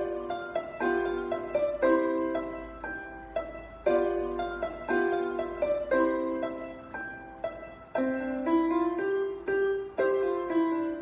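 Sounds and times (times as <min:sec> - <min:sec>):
electronic keyboard piano melody: 0:00.0 - 0:11.0.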